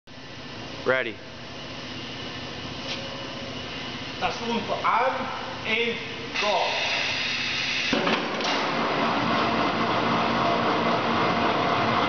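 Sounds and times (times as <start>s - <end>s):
machinery hum and hiss: 0.1s - 12.0s.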